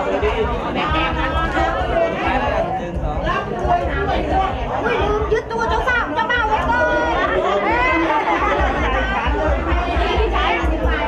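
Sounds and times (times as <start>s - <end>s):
crowd of voices chattering: 0.0s - 11.0s.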